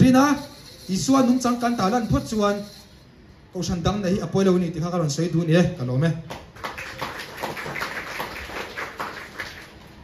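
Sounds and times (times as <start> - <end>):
audience applause: 6.6 - 10.0.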